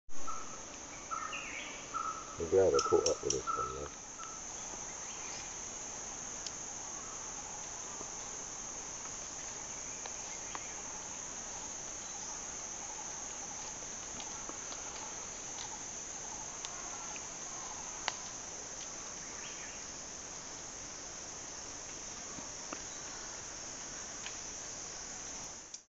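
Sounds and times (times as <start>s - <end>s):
insect chorus drone: 0.1s - 25.9s
faint clicks: 2.7s - 4.4s.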